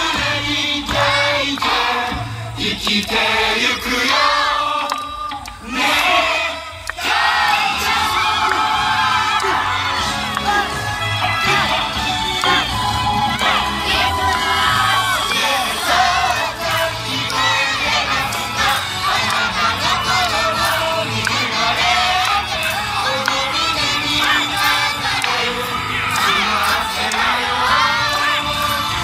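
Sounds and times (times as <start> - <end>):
group shouting calls together: 5.6 - 16.0
dance music: 5.7 - 29.0.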